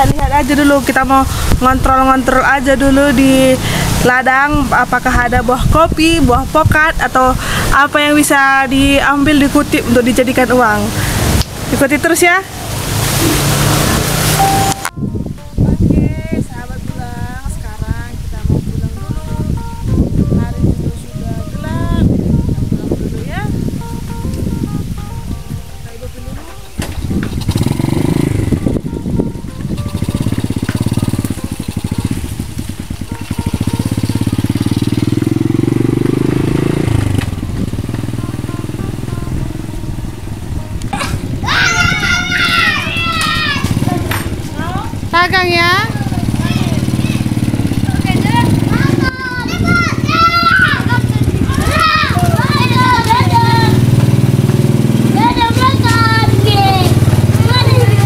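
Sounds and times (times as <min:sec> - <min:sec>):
small motorcycle engine revving: 0:12.4 - 0:14.6, 0:26.7 - 0:58.0
children's voices calling out: 0:40.9 - 0:58.0.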